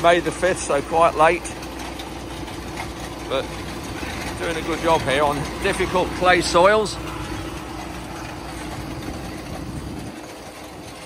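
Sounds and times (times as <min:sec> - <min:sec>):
tractor engine running: 0:00.0 - 0:11.0.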